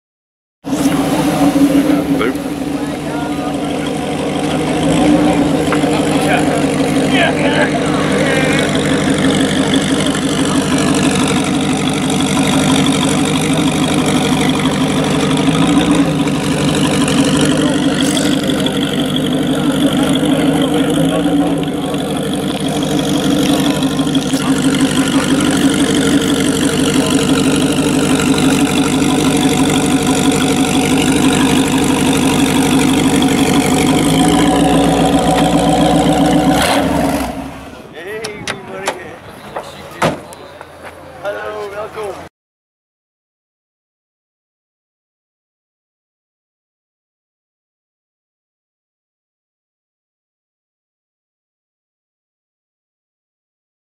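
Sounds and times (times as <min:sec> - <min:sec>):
engine idling loudly: 0:00.6 - 0:40.4.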